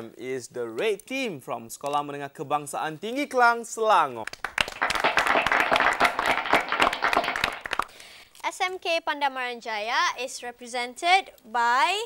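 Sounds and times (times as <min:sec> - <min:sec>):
people clapping: 0:04.2 - 0:08.0.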